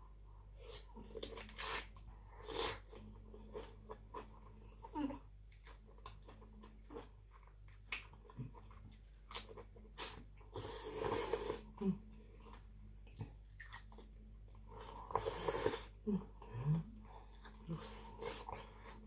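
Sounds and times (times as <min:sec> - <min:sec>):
person chewing and biting food: 0:00.6 - 0:04.3, 0:05.5 - 0:10.4.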